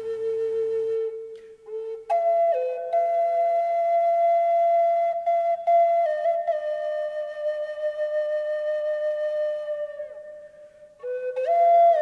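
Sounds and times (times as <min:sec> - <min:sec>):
flute-like wind instrument melody: 0:00.0 - 0:12.0.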